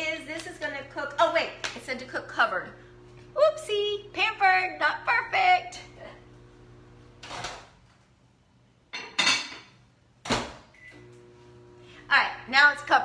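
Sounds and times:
microwave humming: 0.0 - 8.1, 10.2 - 13.0.

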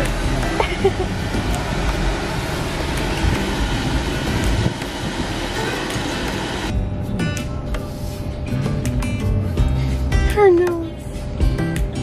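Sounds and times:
traffic and road noise: 0.0 - 6.7
music playing: 0.0 - 12.0.

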